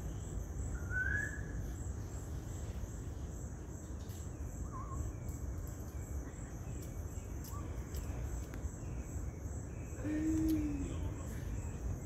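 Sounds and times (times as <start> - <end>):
insects chirring: 0.0 - 12.0
short rising bird whistle: 0.8 - 1.5.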